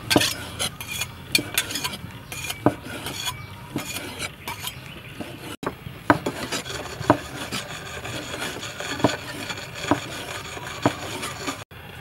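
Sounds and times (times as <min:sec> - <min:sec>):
knife cutting and scraping meat: 0:00.0 - 0:11.7.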